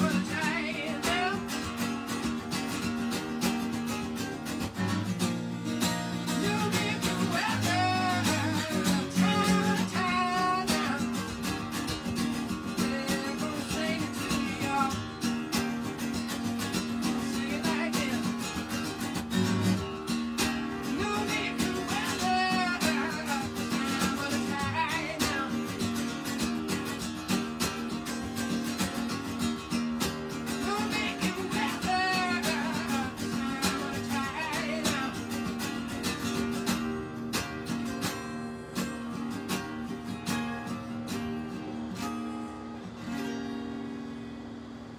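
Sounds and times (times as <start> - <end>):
man singing: 0.0 - 2.3, 6.0 - 11.7, 12.3 - 15.9, 16.7 - 19.2, 20.5 - 26.3, 30.2 - 36.0
strummed acoustic guitar: 0.0 - 44.9.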